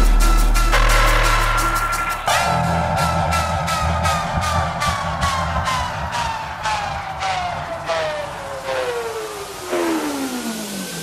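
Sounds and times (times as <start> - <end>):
heavy drum and bass beat: 0.0 - 11.0
synth tone sliding down: 2.3 - 11.0.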